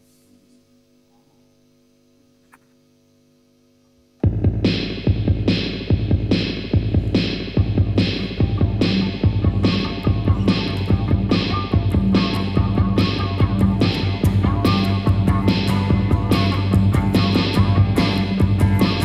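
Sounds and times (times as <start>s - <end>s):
faint steady hum: 0.0s - 19.0s
rock band playing loud: 4.2s - 19.0s.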